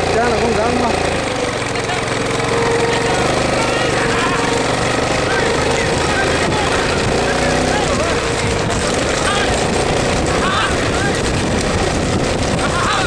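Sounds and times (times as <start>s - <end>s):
vehicle engine running: 0.0s - 13.0s
men shouting: 0.8s - 13.0s.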